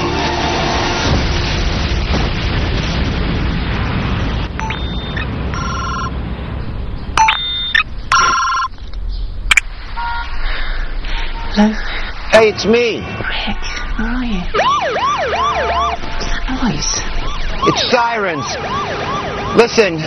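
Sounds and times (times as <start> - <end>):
dense low rumbling: 0.0 - 7.2, 7.8 - 14.8
phone ringing: 4.6 - 6.1, 7.2 - 8.7.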